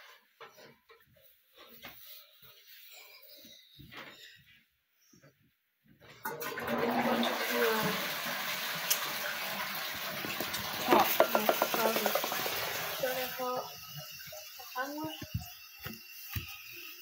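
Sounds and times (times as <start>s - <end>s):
tap running into a sink: 8.6s - 13.2s.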